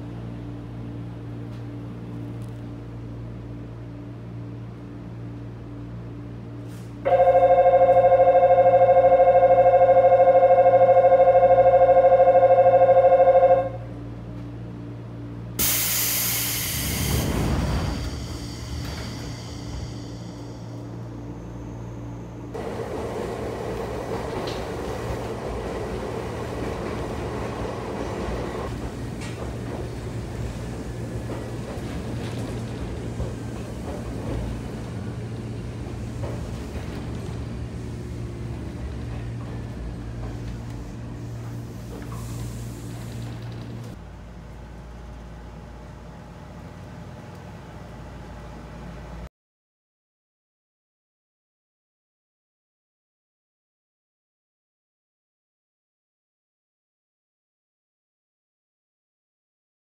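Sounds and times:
train running noise: 0:00.0 - 0:49.3
hiss of air from train doors: 0:06.6 - 0:07.0, 0:15.6 - 0:20.8, 0:40.2 - 0:43.7
station departure bell ringing: 0:07.1 - 0:14.0.

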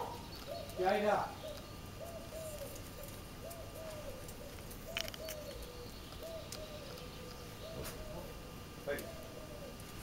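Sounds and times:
dove cooing: 0:00.0 - 0:10.0.

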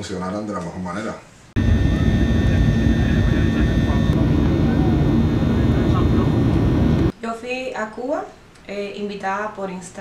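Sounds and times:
faint steady hum: 0:01.5 - 0:07.3
jet engine and airflow rumble: 0:01.6 - 0:07.1.

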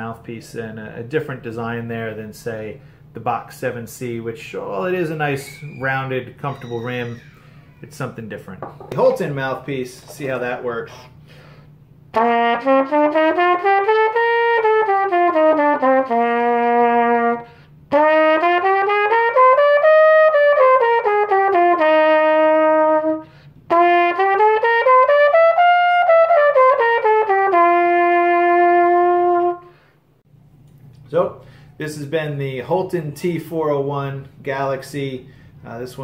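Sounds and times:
trumpet playing scales: 0:12.1 - 0:29.9.

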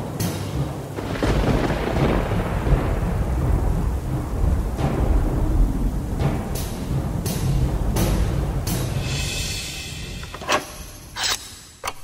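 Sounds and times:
thunder rumbling: 0:00.0 - 0:11.2
rain hiss: 0:00.0 - 0:11.8.

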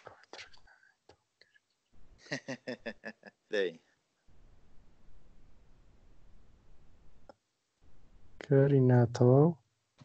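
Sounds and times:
faint low voice murmuring: 0:02.3 - 0:03.8.

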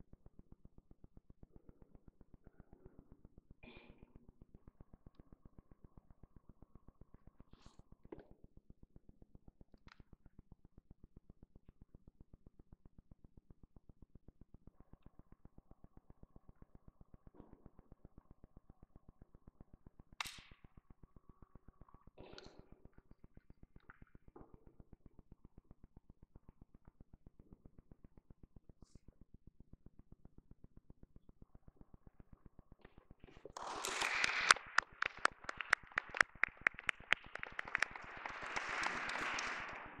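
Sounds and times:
small group applauding: 0:33.4 - 0:40.0
sharp crack: 0:33.6 - 0:40.0.

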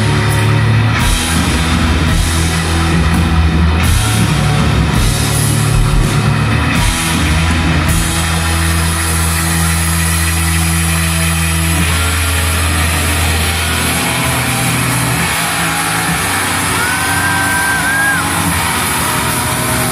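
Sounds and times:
electric guitar and bass chord: 0:00.0 - 0:19.9.

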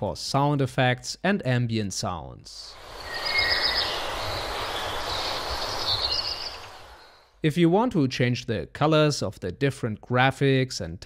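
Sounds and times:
birds chirping: 0:02.7 - 0:07.4
outdoor background noise: 0:02.7 - 0:07.4.

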